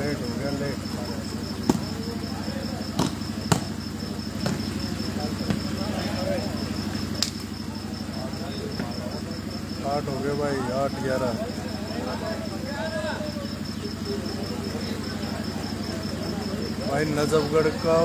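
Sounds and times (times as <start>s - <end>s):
people calling out: 0.0s - 17.9s
volleyball being struck by hand: 1.6s - 2.0s, 2.9s - 3.8s, 4.4s - 4.7s, 5.4s - 5.9s.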